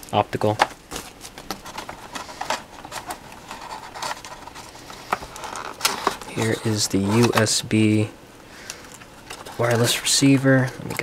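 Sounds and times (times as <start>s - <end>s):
packaging rustling and clicking: 0.4s - 7.6s, 8.7s - 11.0s.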